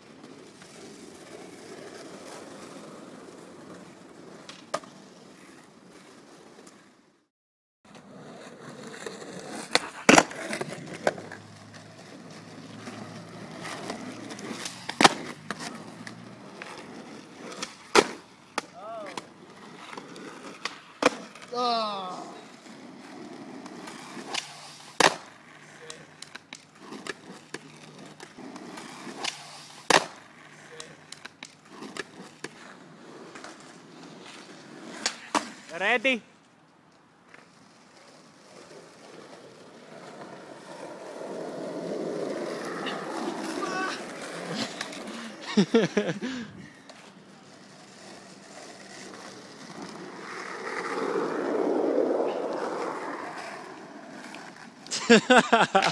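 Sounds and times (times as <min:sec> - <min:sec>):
skateboard slapping the ground: 0:00.0 - 0:07.0, 0:07.9 - 0:55.9
skateboard wheels rolling on asphalt: 0:00.0 - 0:55.9.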